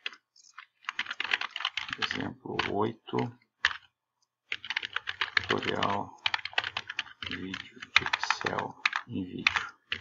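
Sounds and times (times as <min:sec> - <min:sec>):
typing on computer keyboard: 0:00.0 - 0:02.9, 0:03.6 - 0:03.9, 0:04.5 - 0:10.0.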